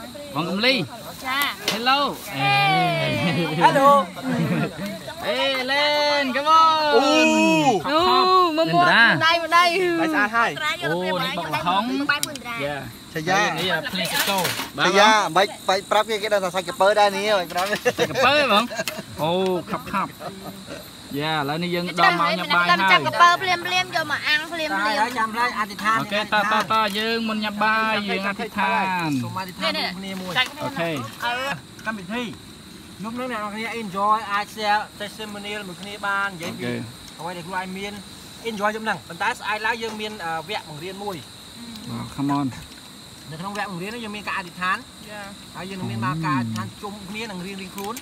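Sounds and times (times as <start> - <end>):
people talking: 0.0 - 32.4
cricket chirring: 0.0 - 48.0
night insects trilling: 0.0 - 48.0.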